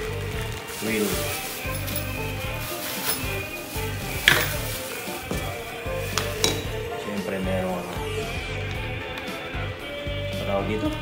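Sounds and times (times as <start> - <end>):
packaging being handled: 0.0 - 8.2
background music: 0.0 - 11.0
sharp knocks and clinks: 6.4 - 6.8.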